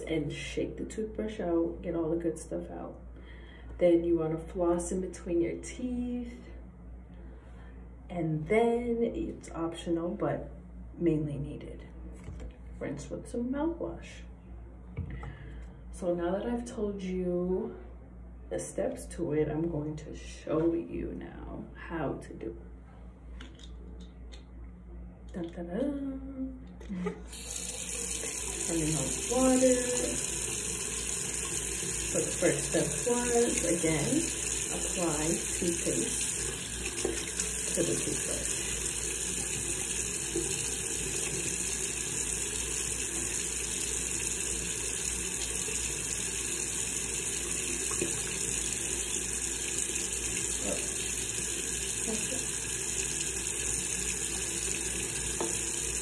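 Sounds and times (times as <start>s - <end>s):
faucet running into sink: 27.3s - 56.0s
tap running into sink: 53.3s - 56.0s.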